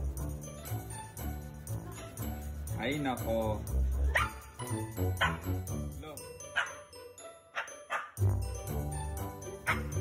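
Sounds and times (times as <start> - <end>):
backing music: 0.0 - 10.0.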